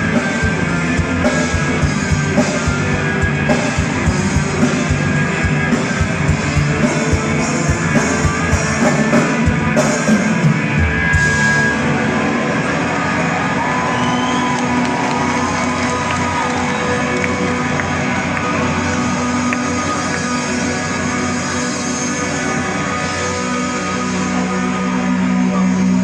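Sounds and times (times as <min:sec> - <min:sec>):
live rock band: 0:00.0 - 0:26.0
sliding lead guitar line: 0:00.0 - 0:26.0.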